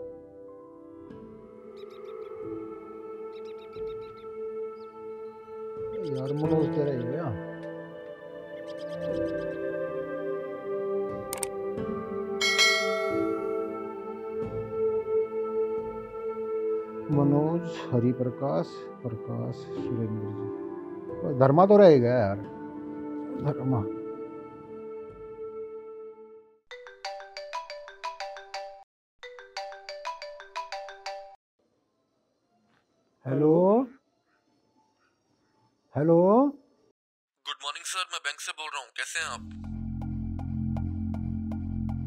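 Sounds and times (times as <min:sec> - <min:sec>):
phone ringtone melody: 0:12.4 - 0:13.6, 0:26.8 - 0:31.4
bright bell chime: 0:12.4 - 0:13.7.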